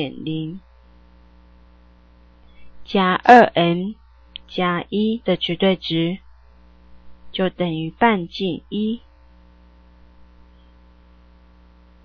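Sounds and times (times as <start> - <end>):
person speaking: 0.0 - 0.6, 2.8 - 6.2, 7.2 - 9.0
low electrical hum: 0.0 - 12.0.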